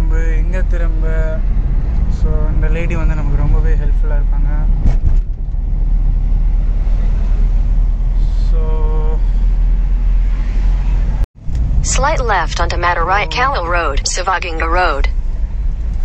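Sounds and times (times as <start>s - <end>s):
car engine and road noise: 0.0s - 16.0s.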